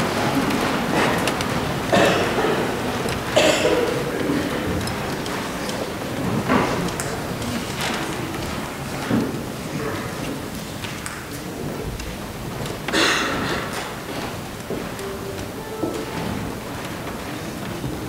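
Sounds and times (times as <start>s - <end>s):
rustling room noise: 4.3s - 18.0s.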